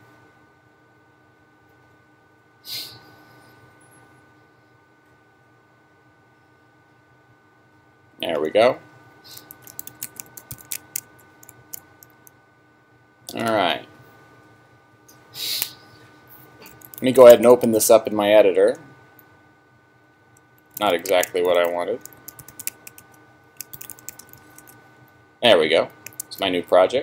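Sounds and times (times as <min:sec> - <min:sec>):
computer keyboard keys clicking: 0:09.4 - 0:12.3, 0:16.7 - 0:17.2, 0:20.6 - 0:24.8, 0:25.9 - 0:26.4.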